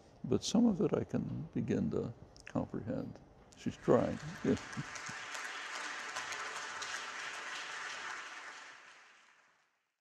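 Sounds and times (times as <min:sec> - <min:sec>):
audience applauding: 0:03.6 - 0:09.8.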